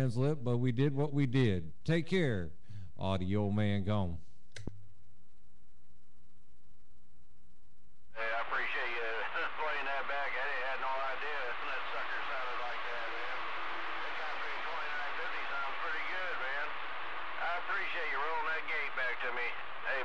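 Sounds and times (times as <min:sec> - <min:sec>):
radio hum: 0:08.1 - 0:20.0
garbled radio voices: 0:08.2 - 0:16.8, 0:17.4 - 0:20.0
radio static: 0:08.2 - 0:20.0.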